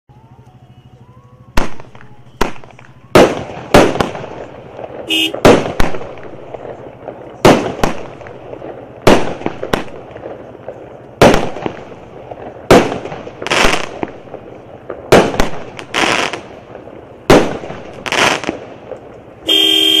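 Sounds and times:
fireworks crackle: 0.2s - 20.0s
fireworks launch thump: 1.6s - 20.0s
loud steady horn-like tone: 5.0s - 5.4s, 19.4s - 20.0s.

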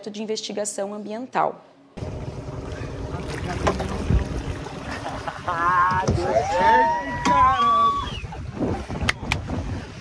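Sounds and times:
boat motor running: 2.0s - 9.8s
water splashing against hull: 2.0s - 10.0s
wind on microphone: 3.7s - 4.8s, 5.7s - 10.0s.

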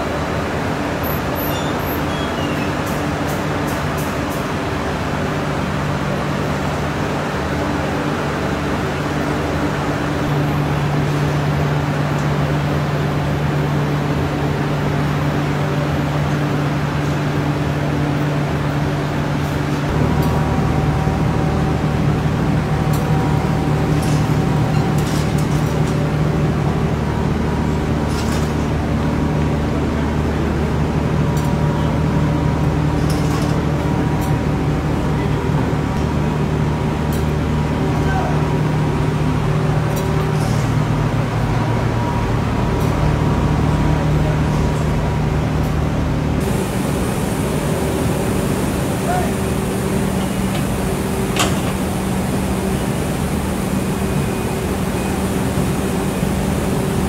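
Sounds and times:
machine drone with low hum: 0.0s - 57.0s.

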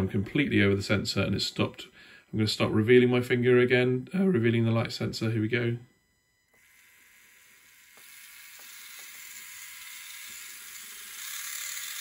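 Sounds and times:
small motor whirring: 6.4s - 12.0s.

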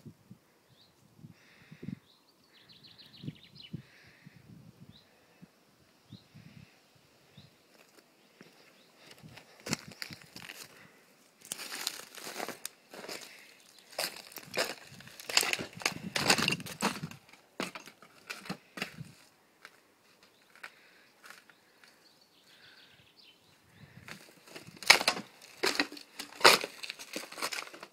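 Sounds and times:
charred wood crunching underfoot: 7.7s - 22.0s, 23.9s - 27.9s.

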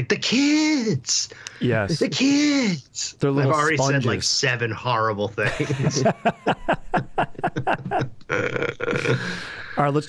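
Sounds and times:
men laughing: 5.4s - 9.7s.

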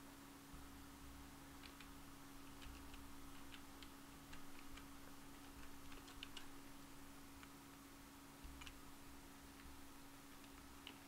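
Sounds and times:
low electrical hum: 0.0s - 11.0s
computer keyboard typing: 1.6s - 6.7s, 8.4s - 8.9s, 9.5s - 11.0s.

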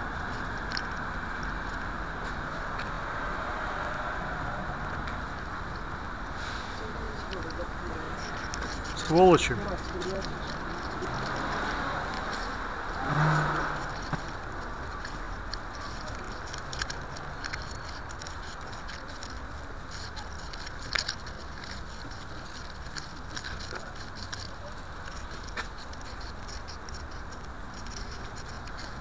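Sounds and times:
vehicle passing: 0.0s - 26.2s
street traffic: 0.0s - 29.0s
camera handling rustling: 13.8s - 29.0s.

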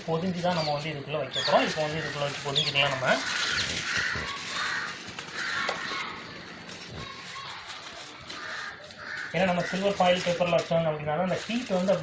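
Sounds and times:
aluminium foil crinkling: 0.1s - 12.0s
crow cawing: 1.4s - 7.2s, 8.3s - 10.4s.

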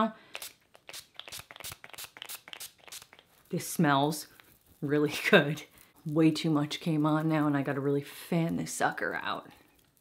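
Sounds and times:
spray bottle spritzes: 0.3s - 3.3s.

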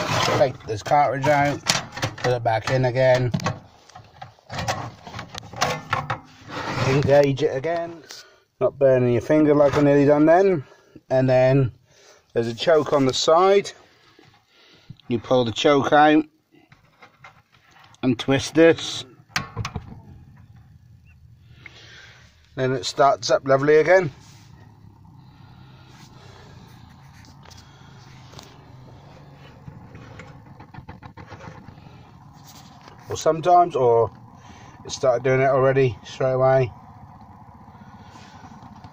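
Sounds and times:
gas heater humming: 0.0s - 11.6s, 17.8s - 38.9s
small crackles and clicks: 37.0s - 38.9s.

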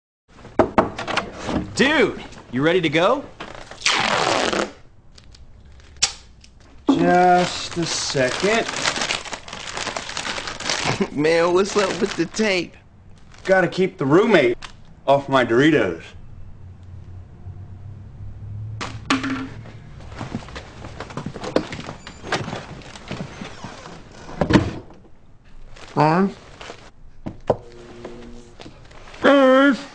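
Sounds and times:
duct tape pulled off roll: 3.5s - 4.8s.

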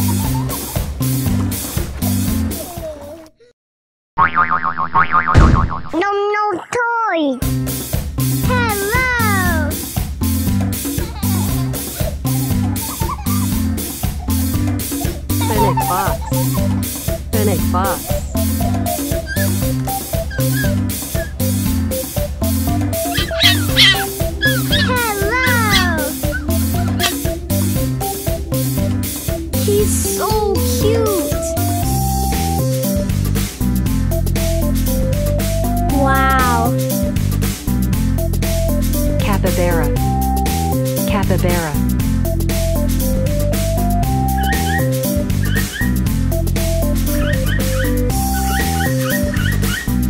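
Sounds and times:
cartoon boing: 4.2s - 6.0s
background music: 7.4s - 50.0s
fox high-pitched cries: 18.1s - 21.4s, 23.0s - 27.3s, 44.3s - 46.0s, 47.2s - 50.0s.

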